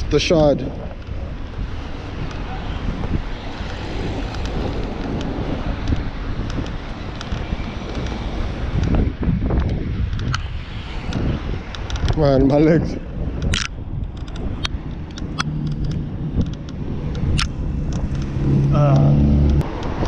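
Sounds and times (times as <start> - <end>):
road traffic: 0.0 - 20.0
wind buffeting microphone: 0.0 - 20.0.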